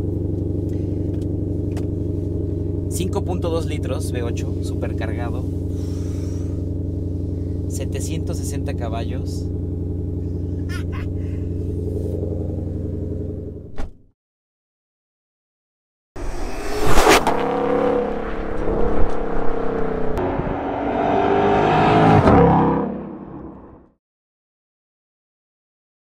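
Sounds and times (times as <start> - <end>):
car engine idling: 0.0 - 13.7
car accelerating hard: 16.2 - 23.9.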